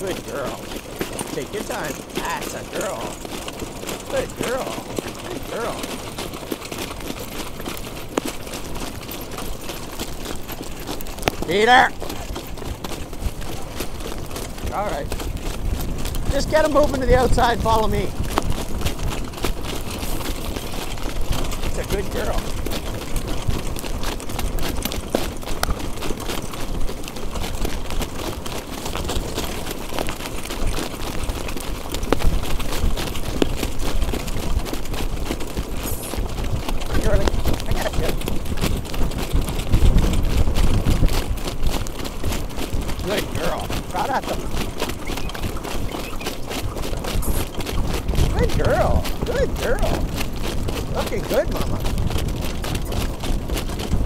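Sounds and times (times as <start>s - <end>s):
hoof and cart clicks and rattles: 0.0s - 54.0s
wind rumbling over microphone: 11.0s - 25.9s, 26.8s - 54.0s.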